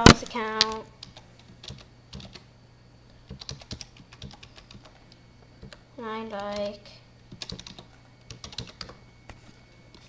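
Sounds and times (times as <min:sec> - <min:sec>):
faint low hum: 0:00.0 - 0:10.0
keyboard keys clicking: 0:03.3 - 0:05.0, 0:07.3 - 0:09.0.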